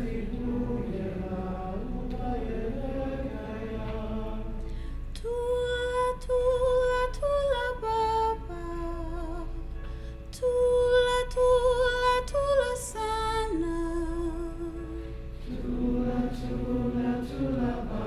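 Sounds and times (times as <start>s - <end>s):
woman singing a lullaby: 5.1s - 15.2s.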